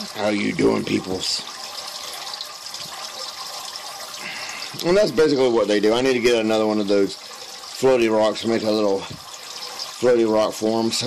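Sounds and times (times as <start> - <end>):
water splashing into tank: 0.0 - 11.0.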